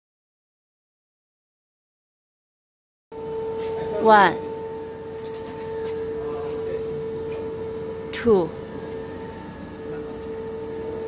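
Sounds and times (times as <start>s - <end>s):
machine humming: 3.1s - 11.0s.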